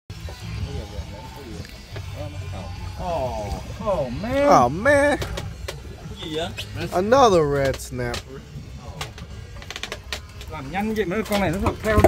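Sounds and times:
voices: 0.1s - 12.0s.

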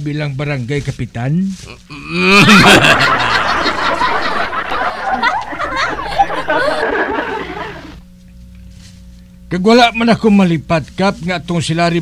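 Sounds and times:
group of people laughing: 2.0s - 8.0s.

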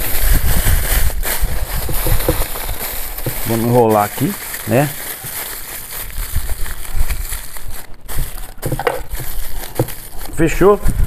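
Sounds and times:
wind rumbling on microphone: 0.0s - 4.0s, 5.9s - 11.0s
aluminium foil crinkling: 0.0s - 11.0s.

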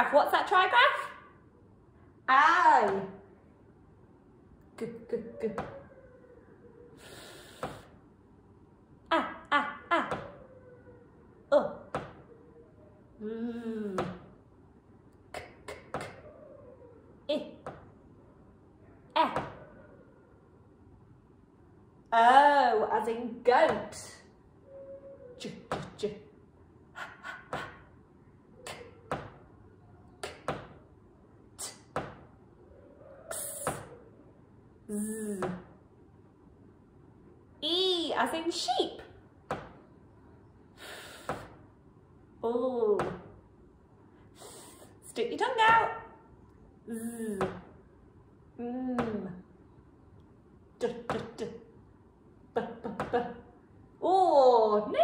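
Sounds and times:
woman saying letter sounds: 0.0s - 1.2s, 2.3s - 3.2s, 4.7s - 5.7s, 17.3s - 17.6s, 19.1s - 19.6s, 22.1s - 24.3s, 25.4s - 26.3s, 33.3s - 33.9s, 34.9s - 35.7s, 37.6s - 39.1s, 45.0s - 46.1s, 46.9s - 47.6s, 50.8s - 51.7s
woman voicing letter sounds: 34.9s - 35.6s, 46.9s - 47.6s.

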